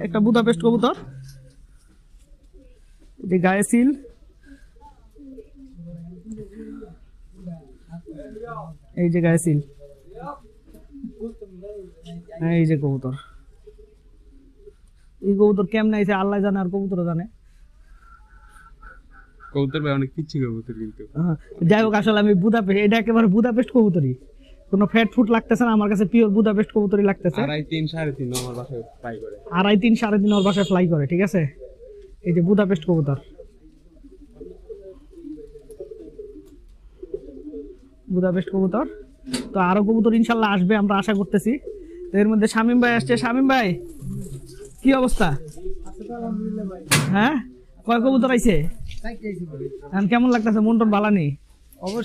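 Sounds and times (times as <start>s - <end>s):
pigeons cooing: 0.0s - 52.0s
man's voice: 19.6s - 24.2s, 25.0s - 30.7s, 42.7s - 44.2s, 44.9s - 51.0s.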